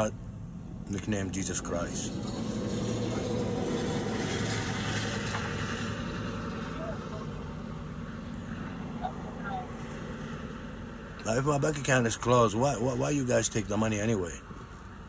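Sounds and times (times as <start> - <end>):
vehicle engine drone: 0.0 - 15.0.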